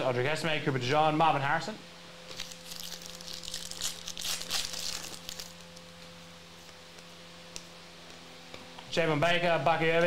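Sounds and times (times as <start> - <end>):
foil wrapper tearing and crinkling: 2.3 - 5.8.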